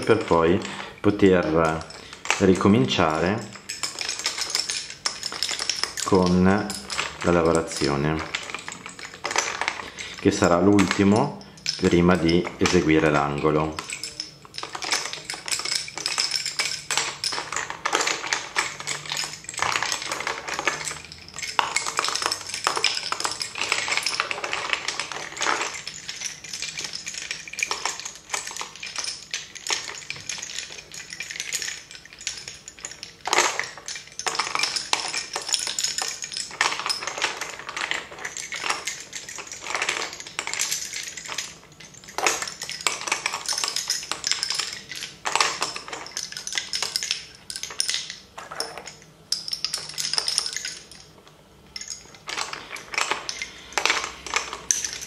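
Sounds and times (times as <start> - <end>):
wooden bobbins clicking together: 0.0 - 55.0.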